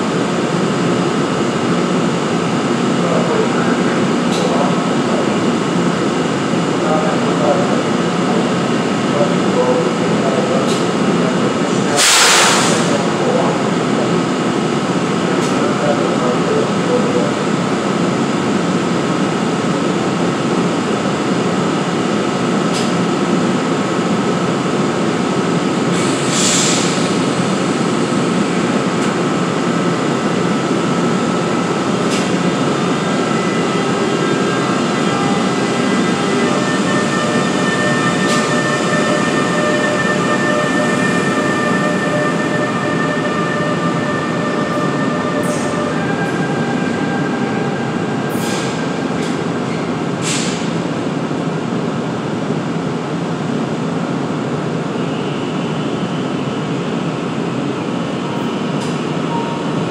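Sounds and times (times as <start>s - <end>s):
train wheels rumbling on rail: 0.0s - 54.8s
electric locomotive hum: 0.0s - 59.9s.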